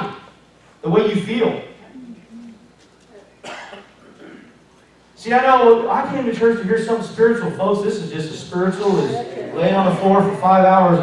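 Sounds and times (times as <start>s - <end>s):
faint voice sounds: 1.8s - 3.4s
person coughing: 3.4s - 4.6s.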